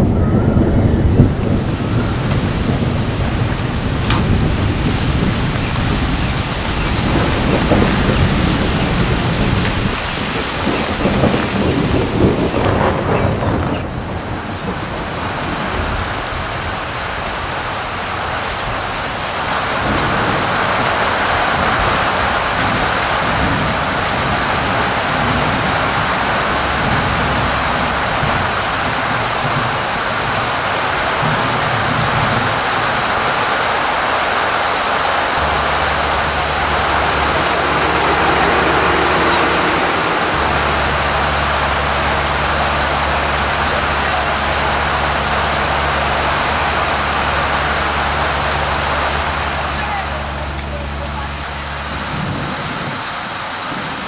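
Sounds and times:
loud steady rushing noise: 0:00.0 - 0:54.0
low steady hum: 0:35.1 - 0:52.4.

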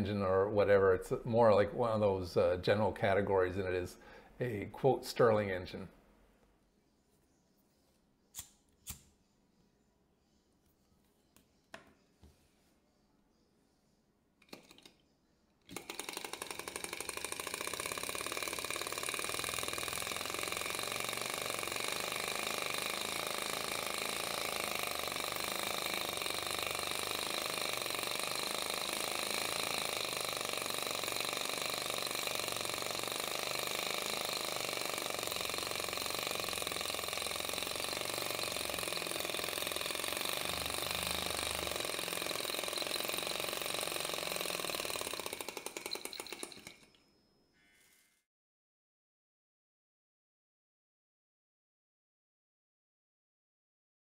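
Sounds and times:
model engine running rapidly: 0:15.7 - 0:46.8.

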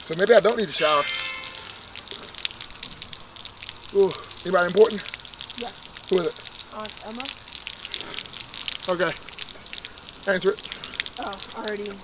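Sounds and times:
water splashing and dripping: 0:00.0 - 0:12.0
hose spray hissing: 0:00.5 - 0:02.0.

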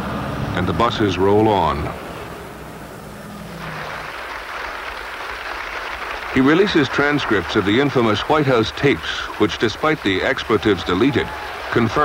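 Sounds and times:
buses in street traffic: 0:00.0 - 0:12.0
steady hissy noise: 0:00.0 - 0:12.0.

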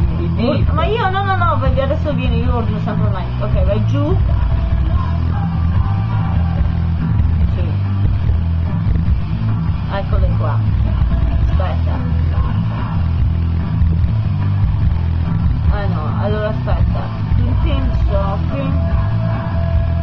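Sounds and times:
background music with bass line: 0:00.0 - 0:20.0
indistinct voices: 0:00.0 - 0:20.0.

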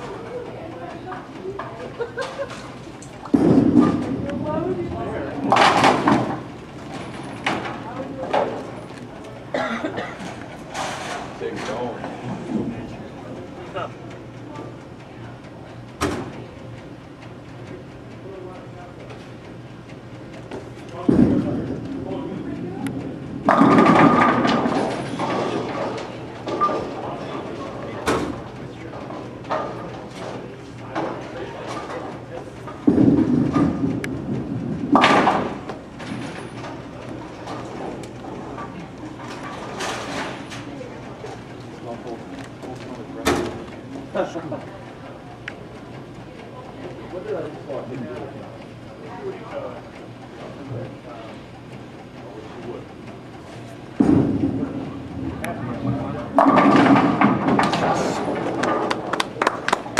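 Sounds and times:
background chatter: 0:00.0 - 0:59.9
bowling balls thudding and rolling: 0:03.3 - 0:07.8, 0:21.0 - 0:22.0, 0:23.1 - 0:28.4, 0:31.0 - 0:40.6, 0:54.0 - 0:59.9
bowling pins crashing: 0:23.4 - 0:25.9, 0:32.8 - 0:36.7, 0:54.0 - 0:59.6.

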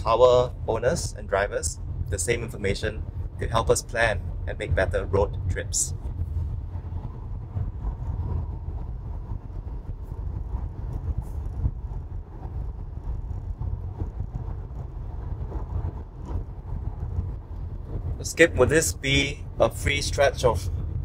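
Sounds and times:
road and tyre rumble: 0:00.0 - 0:21.0
wind noise: 0:00.0 - 0:21.0.

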